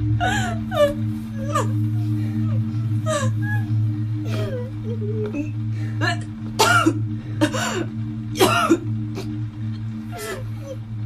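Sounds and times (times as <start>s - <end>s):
low musical drone: 0.0s - 11.0s.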